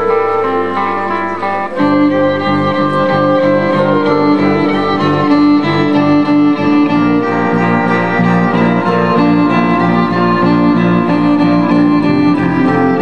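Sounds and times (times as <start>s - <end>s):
bass guitar: 0.0s - 13.0s
electric guitar: 0.0s - 13.0s
fiddle melody: 0.0s - 13.0s.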